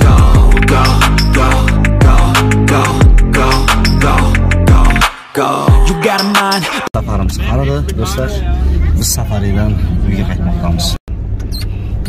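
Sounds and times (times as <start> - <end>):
voices inside a car: 6.9 - 11.0
engine and tyre rumble: 7.0 - 12.0.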